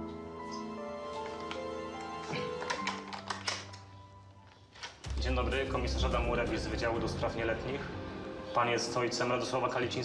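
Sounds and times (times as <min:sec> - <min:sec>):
calm background music: 0:00.0 - 0:10.0.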